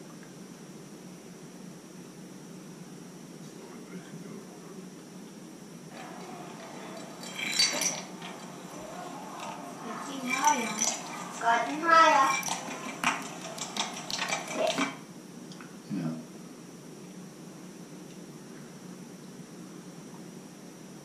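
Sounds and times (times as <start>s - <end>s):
glass jar clinking and rattling: 6.0s - 15.0s
high voice speaking: 11.4s - 12.4s.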